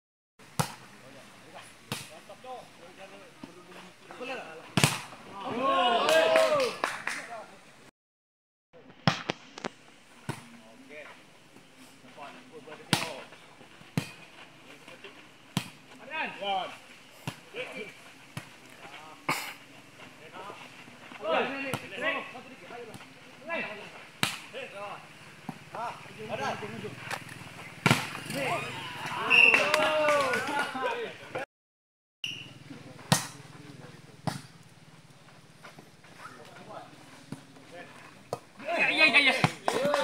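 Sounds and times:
people calling and shouting: 0.4 - 7.9, 8.8 - 31.5, 32.2 - 40.0.

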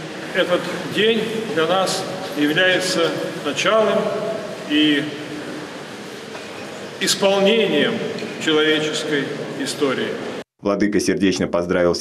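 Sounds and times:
reverberant room hiss: 0.0 - 12.0
man speaking through microphone: 0.3 - 5.3, 7.0 - 12.0.

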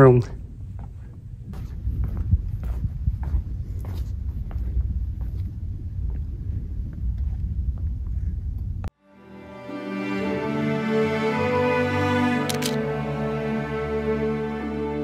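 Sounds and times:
footsteps: 0.7 - 6.3
slow background music: 9.0 - 15.0
camera handling noise: 12.5 - 12.8.

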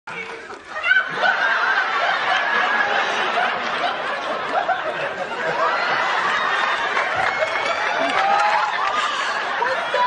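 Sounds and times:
studio audience laughing: 1.0 - 10.0.

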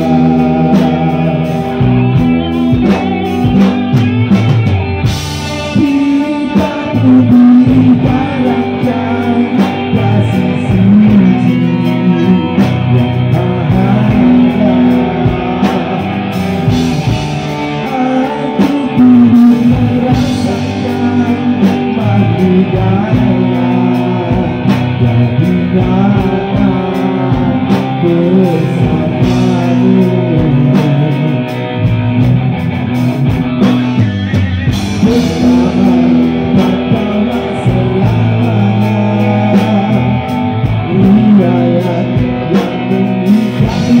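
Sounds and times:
man singing: 0.0 - 4.4, 5.3 - 32.5, 33.5 - 44.0
drum kit: 0.0 - 44.0
electric guitars: 0.0 - 44.0.

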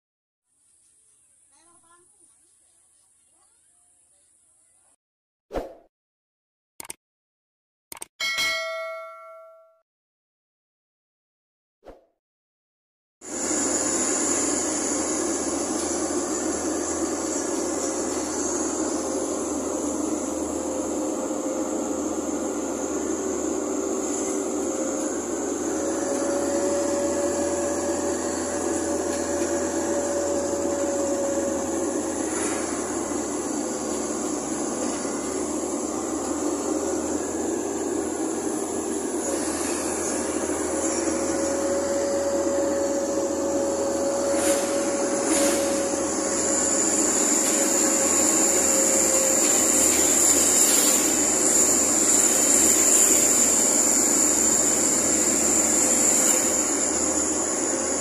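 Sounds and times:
car road and engine noise: 13.5 - 58.0.

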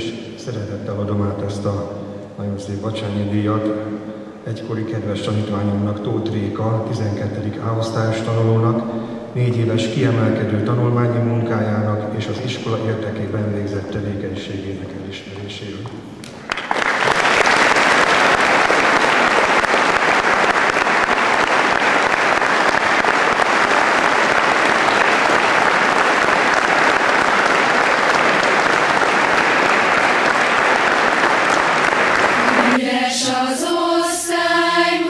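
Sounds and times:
audience applauding: 16.2 - 32.8.

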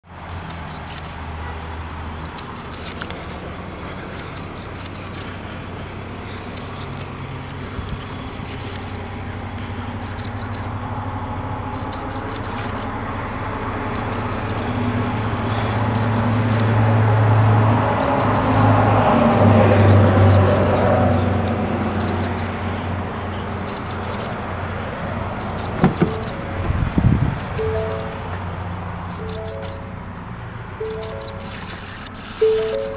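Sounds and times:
vehicle engine idling: 0.0 - 32.9
faint clicks: 2.2 - 5.4, 9.9 - 10.8, 11.6 - 13.1, 13.8 - 14.8, 15.4 - 18.9, 19.7 - 24.5, 25.2 - 26.4.

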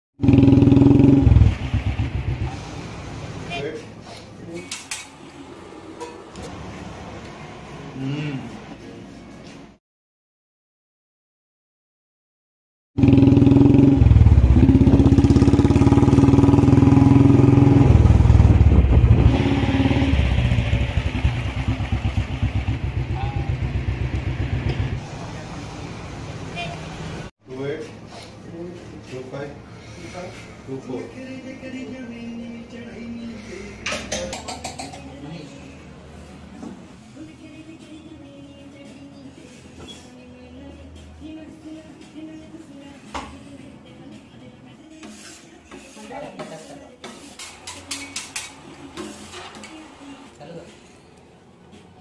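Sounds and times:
motorcycle engine running: 0.2 - 3.1, 13.0 - 25.1
low street background: 0.2 - 9.8, 13.0 - 52.0.

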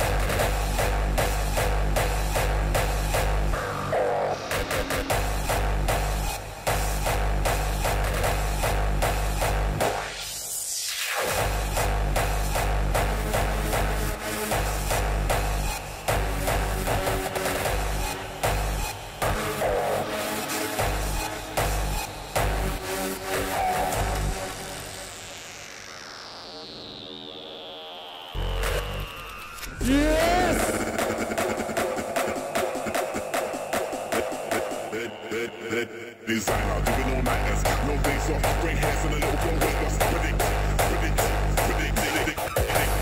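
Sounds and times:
hardstyle dance music: 0.0 - 43.0.

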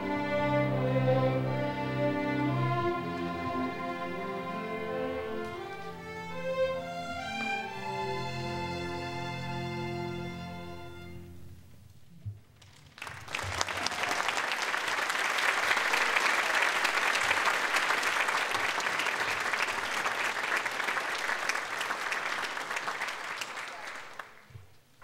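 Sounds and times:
audience applauding: 12.6 - 24.6.

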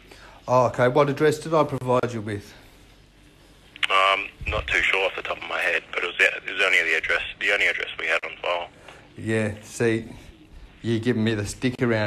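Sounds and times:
telephone conversation: 3.7 - 11.0.

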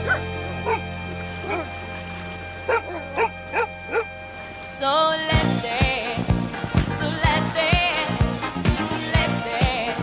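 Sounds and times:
dog yipping: 0.0 - 1.7, 2.7 - 4.1
background music with low chord: 0.0 - 10.0.

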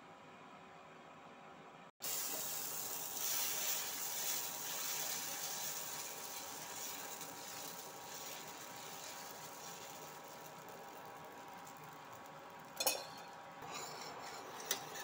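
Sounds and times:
batter sizzling on hot griddle: 2.0 - 15.0.

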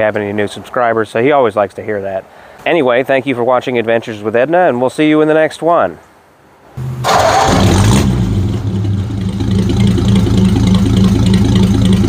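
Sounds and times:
vehicle engine starting and idling: 6.8 - 12.0.

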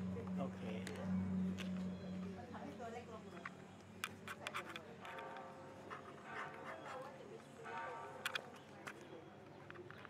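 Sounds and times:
distant voices: 0.0 - 4.3.

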